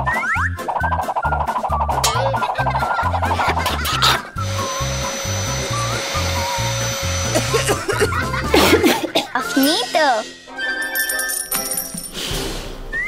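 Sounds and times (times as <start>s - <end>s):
vacuum cleaner whirring: 3.2s - 8.9s.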